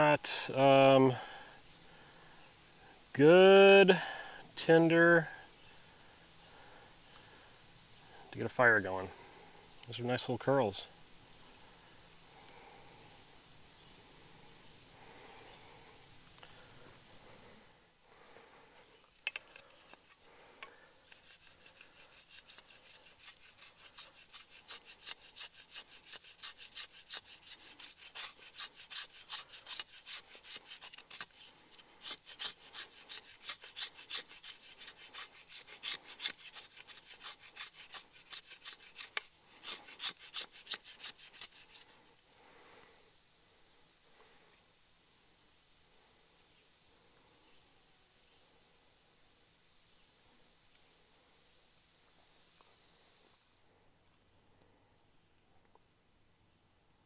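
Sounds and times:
wooden stick scraped on shovel edge: 19.2s - 42.0s.

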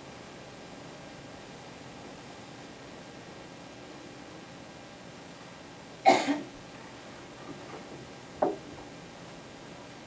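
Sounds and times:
person coughing: 6.1s - 6.5s.

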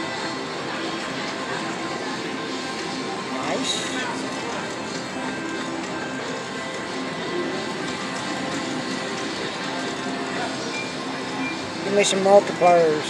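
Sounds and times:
slot machine reels spinning: 2.2s - 13.0s
slot machine music: 2.5s - 13.0s.

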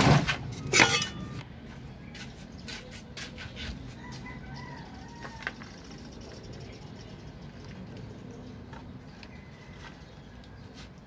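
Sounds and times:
rooster crowing: 3.9s - 5.6s.

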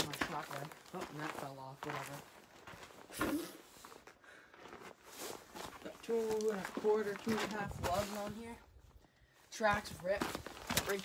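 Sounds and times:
faint scuffing footsteps: 0.0s - 8.6s, 9.6s - 11.0s
rustling handling noise: 0.0s - 8.9s
soft scrapes: 4.6s - 8.6s.

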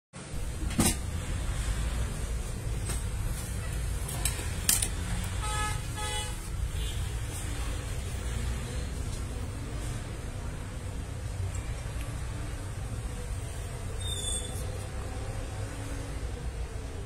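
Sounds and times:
street traffic rumble: 0.2s - 17.0s
vehicle horn tooting: 5.3s - 7.2s.

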